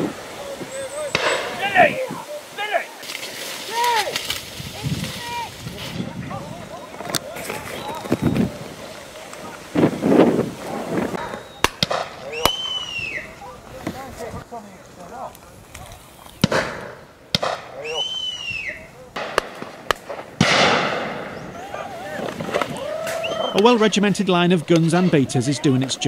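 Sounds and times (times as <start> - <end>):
wind noise: 0.0 - 17.2
distant voices: 0.0 - 26.0
shotgun shots: 1.1 - 1.9, 11.2 - 12.8, 16.4 - 17.8, 19.2 - 21.4.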